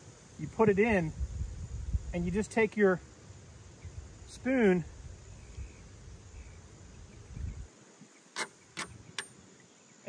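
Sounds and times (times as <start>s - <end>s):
wind rumble on microphone: 0.0s - 7.7s.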